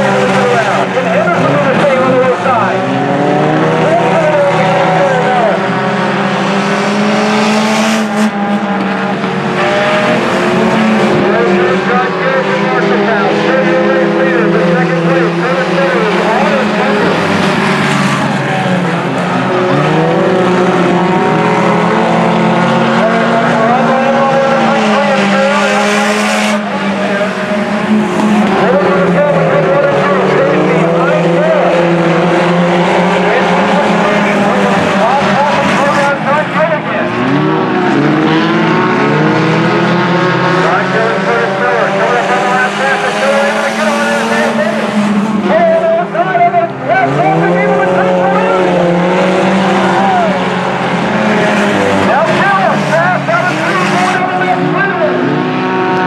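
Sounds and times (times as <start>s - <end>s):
race car engines running hard: 0.0s - 56.0s.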